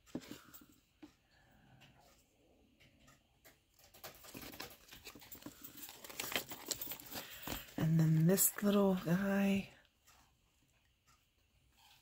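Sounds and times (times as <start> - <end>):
paper tags rustling: 3.7 - 9.6.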